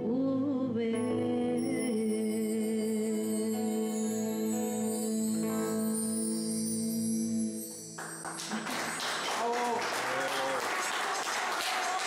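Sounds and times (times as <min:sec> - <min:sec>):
crowd clapping: 0:08.0 - 0:12.0.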